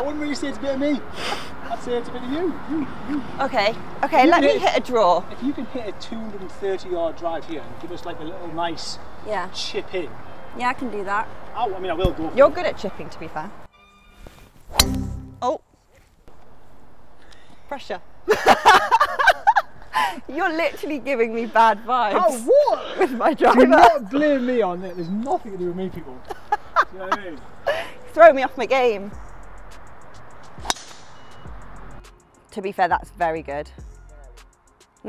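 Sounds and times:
golf club striking ball: 14.7s - 15.4s, 30.6s - 31.4s.

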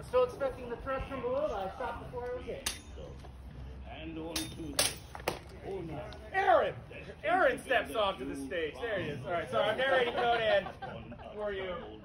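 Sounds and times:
steel swords clashing: 2.6s - 3.1s, 4.4s - 5.2s.

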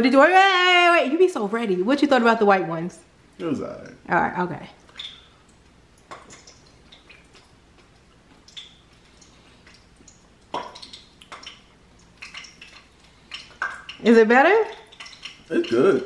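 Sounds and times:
mouth chewing wet fruit: 4.8s - 16.0s.

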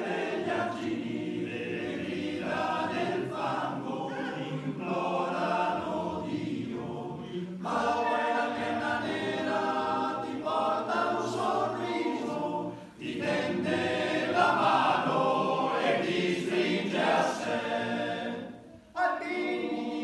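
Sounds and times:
male choir singing a cappella: 0.0s - 20.0s.

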